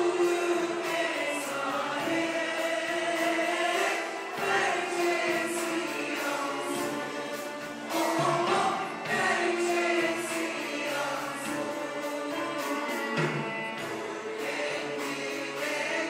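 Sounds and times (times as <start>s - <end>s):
mixed choir singing: 0.0s - 16.0s
small instrumental ensemble: 0.0s - 16.0s.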